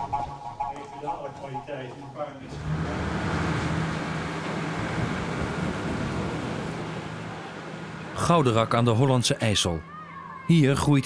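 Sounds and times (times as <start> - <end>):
ferry engine droning: 1.1 - 10.4.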